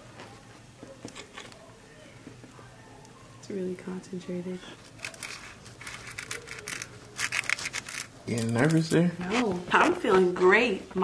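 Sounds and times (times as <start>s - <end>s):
aluminium foil crinkling: 4.6s - 9.5s.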